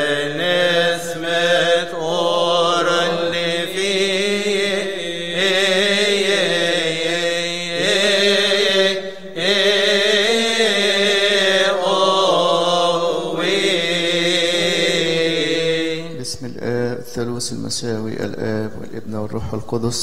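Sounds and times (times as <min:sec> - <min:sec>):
liturgical chanting: 0:00.0 - 0:20.0.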